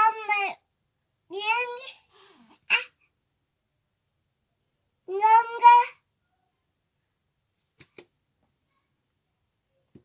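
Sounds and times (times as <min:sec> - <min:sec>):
toddler sharp burst of breath: 0:01.8 - 0:03.0.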